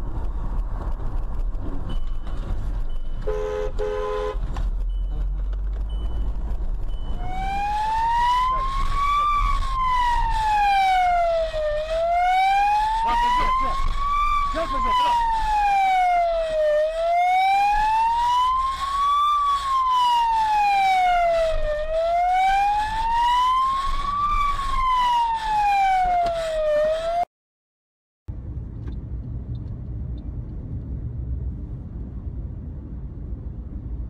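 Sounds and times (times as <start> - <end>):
steady low rumble: 0.0 - 19.6, 28.3 - 34.0
police siren wailing: 7.1 - 27.3.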